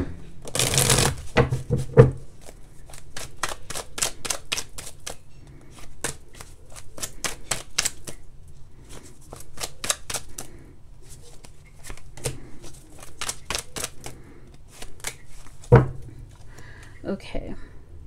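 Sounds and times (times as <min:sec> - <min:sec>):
cards being shuffled: 0:00.4 - 0:16.6.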